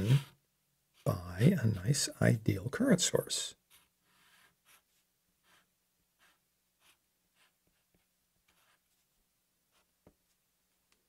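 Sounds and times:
marker scratching on paper: 0.0 - 0.3, 3.6 - 10.2.

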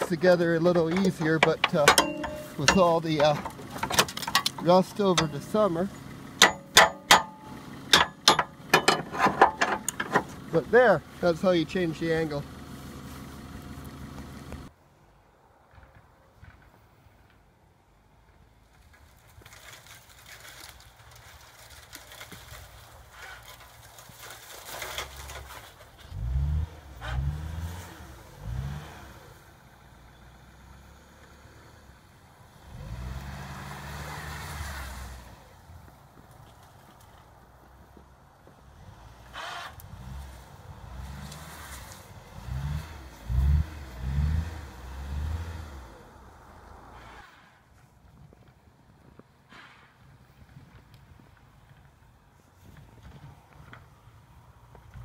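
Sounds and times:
car engine revving: 26.1 - 29.5, 38.8 - 47.2.

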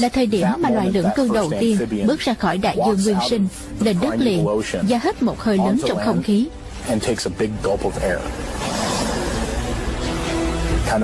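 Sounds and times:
voice: 0.0 - 8.3.

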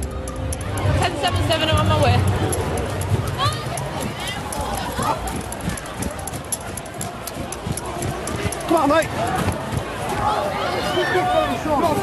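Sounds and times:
indistinct crowd voices: 0.0 - 12.0
running footsteps on pavement: 0.6 - 12.0.

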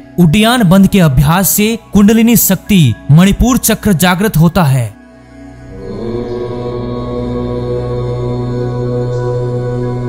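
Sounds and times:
low meditative drone: 5.1 - 10.0.

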